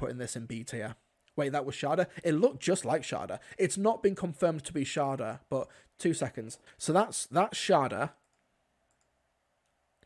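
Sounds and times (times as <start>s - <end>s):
person speaking: 0.0s - 8.3s
computer mouse clicks: 8.2s - 9.8s.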